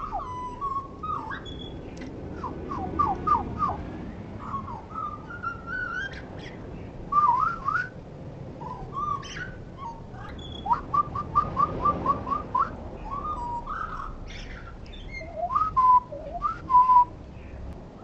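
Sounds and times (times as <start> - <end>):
blackbird song: 0.0 - 8.0, 8.6 - 18.0.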